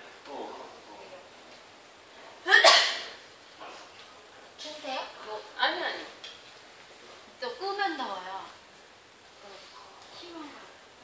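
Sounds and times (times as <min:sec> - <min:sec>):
person sneezing: 0:02.5 - 0:03.2.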